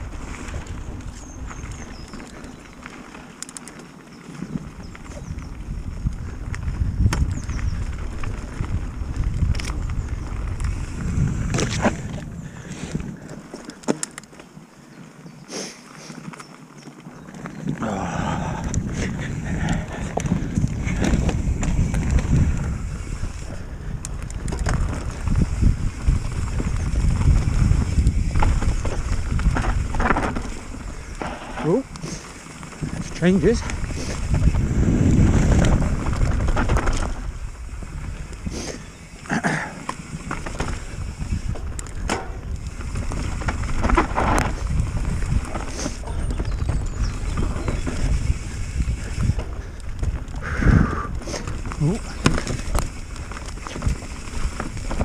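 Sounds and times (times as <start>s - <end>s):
wind buffeting microphone: 0.0s - 3.3s, 4.2s - 13.7s, 17.3s - 55.0s
bike clicks and rattles: 0.0s - 55.0s
bike tyres rumbling on dirt: 0.0s - 55.0s.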